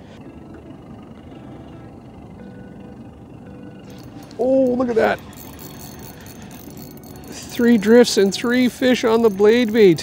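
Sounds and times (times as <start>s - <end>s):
boat and water background: 0.0s - 10.0s
fishing reel ticking: 3.9s - 10.0s.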